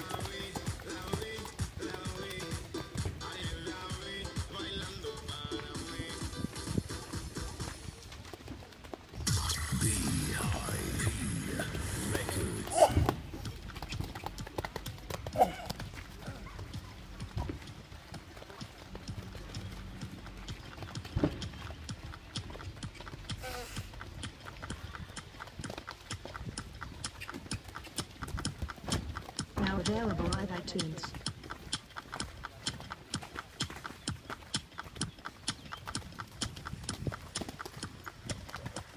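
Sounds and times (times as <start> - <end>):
horse hoofbeats on wet sand: 0.0 - 38.9.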